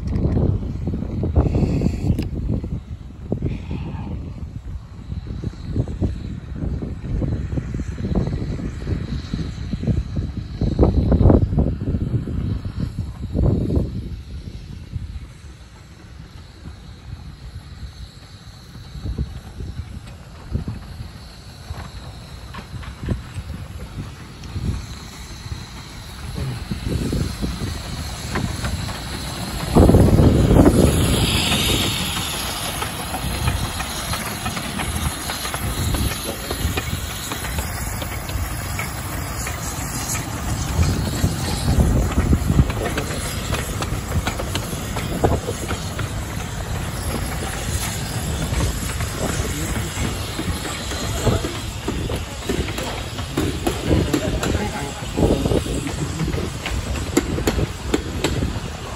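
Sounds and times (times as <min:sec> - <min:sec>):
steam locomotive rumble: 0:00.0 - 0:58.9
steam hiss: 0:00.2 - 0:58.9
train wheels clattering on rails: 0:12.0 - 0:58.9.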